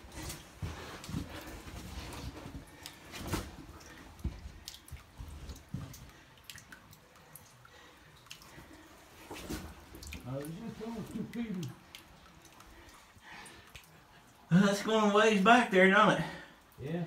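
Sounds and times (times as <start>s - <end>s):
water dripping in a cave: 0.0s - 17.0s.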